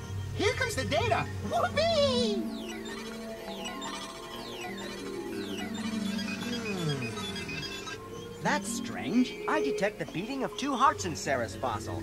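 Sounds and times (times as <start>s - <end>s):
background music: 0.0s - 12.0s
tones sliding down in pitch: 1.7s - 8.1s.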